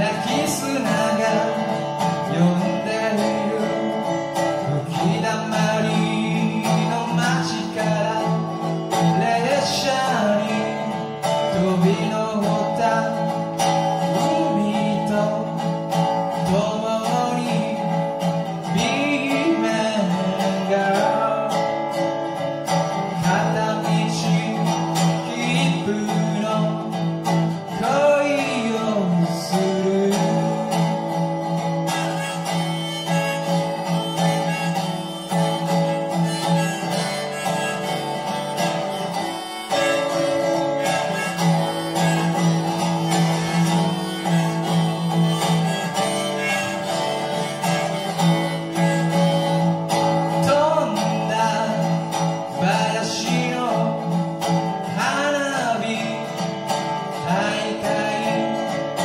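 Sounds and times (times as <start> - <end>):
resonator guitar strummed: 0.0 - 59.0
harmonica bending notes: 30.4 - 52.5.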